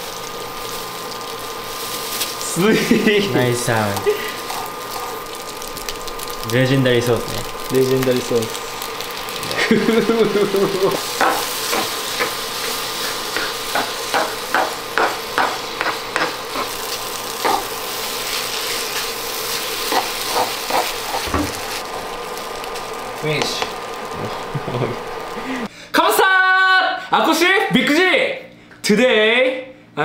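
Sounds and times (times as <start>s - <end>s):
rice sizzling in a pan: 0.0s - 25.7s.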